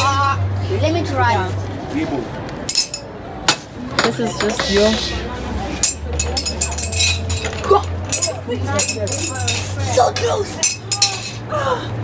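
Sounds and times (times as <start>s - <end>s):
rings clinking on glass bottles: 2.7s - 3.1s, 5.8s - 11.5s.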